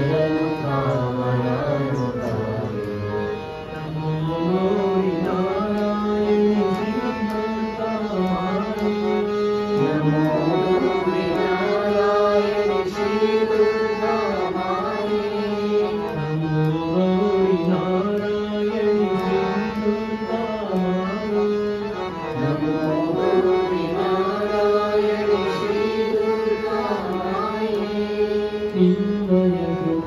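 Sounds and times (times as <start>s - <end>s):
group of voices singing: 0.0s - 30.0s
harmonium: 0.0s - 30.0s.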